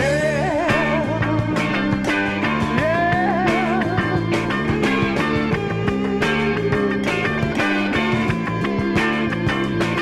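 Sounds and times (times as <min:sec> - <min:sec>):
rock music instrumental: 0:00.0 - 0:10.0.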